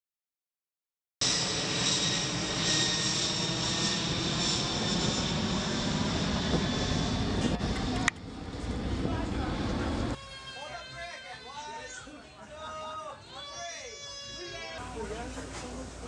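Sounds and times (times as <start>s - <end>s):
airplane engines whining overhead: 1.2s - 10.3s
outdoor ambience: 1.2s - 16.0s.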